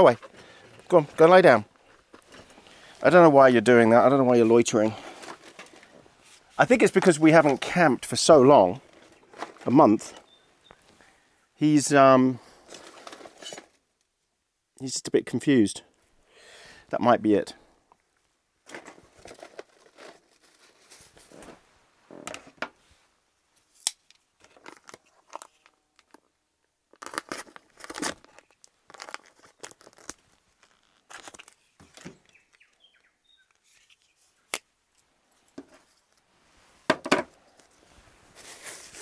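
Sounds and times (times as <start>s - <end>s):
plastic packaging crinkling and tearing: 18.8s - 21.4s, 24.4s - 26.3s, 26.9s - 32.6s.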